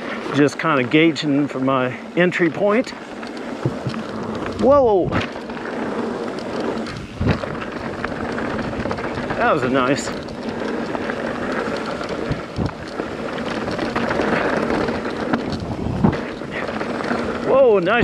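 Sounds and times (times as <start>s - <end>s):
bike tyres rolling on gravel: 0.0s - 18.0s
bike knocking over bumps: 2.8s - 18.0s
wind noise: 3.5s - 18.0s.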